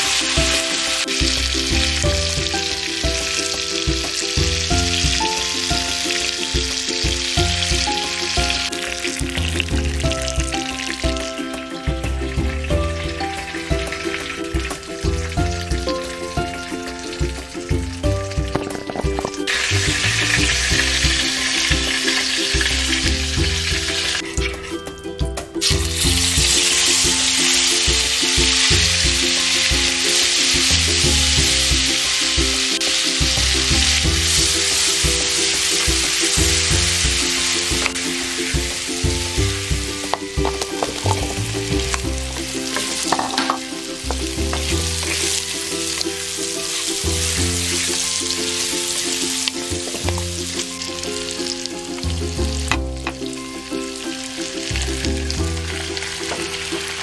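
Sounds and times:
garlic sizzling in a pan: 0:00.0 - 0:24.8, 0:25.6 - 0:57.0.

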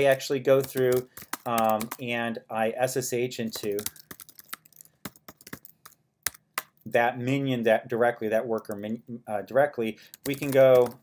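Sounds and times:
typing on computer keyboard: 0:00.0 - 0:02.0, 0:03.5 - 0:06.8, 0:10.0 - 0:11.0.

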